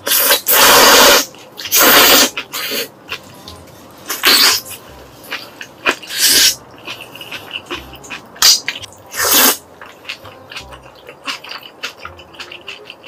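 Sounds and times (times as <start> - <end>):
person slurping noodles: 0.0 - 2.9, 4.1 - 4.7, 6.0 - 7.6, 8.4 - 9.6
wet chewing and lip-smacking: 1.3 - 13.0.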